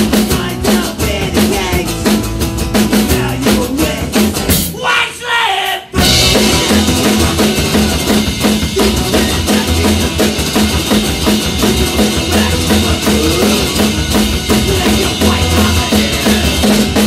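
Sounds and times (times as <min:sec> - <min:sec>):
live rock band playing: 0:00.0 - 0:04.8, 0:06.0 - 0:17.0.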